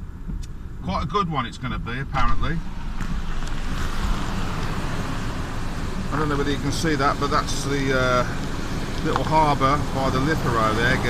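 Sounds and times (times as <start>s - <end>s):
low rumble: 0.0s - 7.5s.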